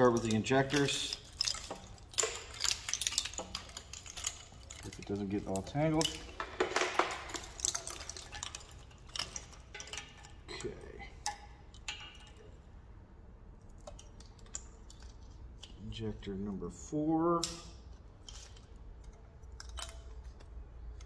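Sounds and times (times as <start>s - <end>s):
wiring harness clattering and rustling: 0.0s - 12.7s, 17.4s - 21.0s.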